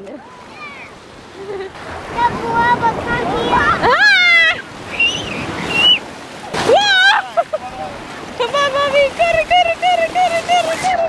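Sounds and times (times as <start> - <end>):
small waves breaking: 0.0 - 11.0.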